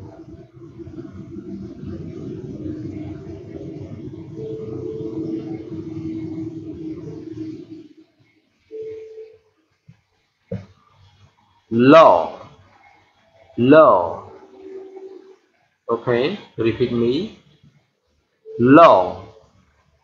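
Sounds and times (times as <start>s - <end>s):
low rumbling noise: 0.0s - 9.3s, 11.5s - 17.4s
steady hum: 0.0s - 20.0s.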